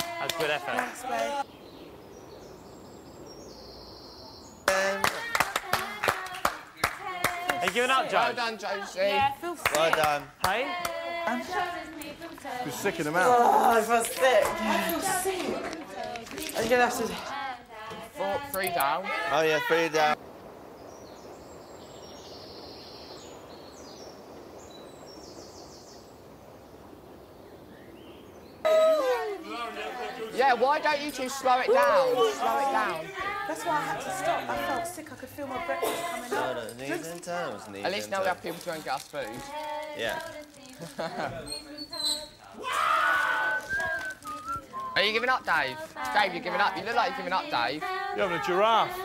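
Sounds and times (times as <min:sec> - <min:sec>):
people clapping: 0:00.0 - 0:01.4, 0:04.6 - 0:08.4, 0:09.2 - 0:13.0, 0:13.9 - 0:17.4, 0:43.1 - 0:46.7
voices calling out: 0:00.0 - 0:01.6, 0:04.5 - 0:20.2, 0:28.6 - 0:49.0
garden background noise: 0:00.0 - 0:49.0
faint high chirps: 0:41.4 - 0:45.4.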